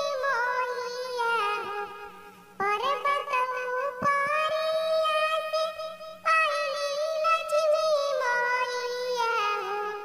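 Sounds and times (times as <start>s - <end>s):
high-pitched cartoon singing voice: 2.6s - 10.0s.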